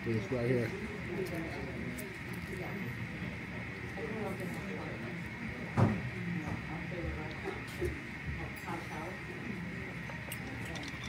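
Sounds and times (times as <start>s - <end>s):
faint murmur of voices: 0.0s - 11.0s.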